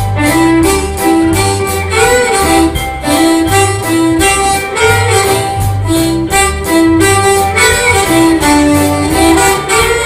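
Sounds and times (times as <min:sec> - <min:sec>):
lead guitar line bending: 0:00.0 - 0:10.0
live band playing instrumental: 0:00.0 - 0:10.0.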